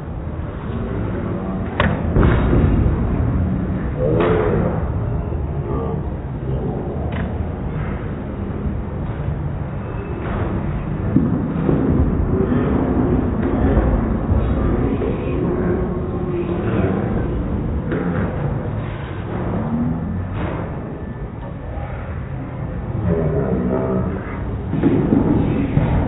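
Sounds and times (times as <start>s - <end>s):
bowling balls rolling: 6.2s - 26.0s.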